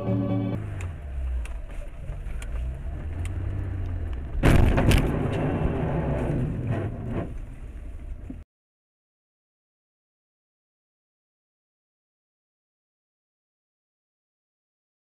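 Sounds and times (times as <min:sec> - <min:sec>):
car engine and road noise: 0:00.0 - 0:08.4
car collision crash: 0:04.3 - 0:07.4.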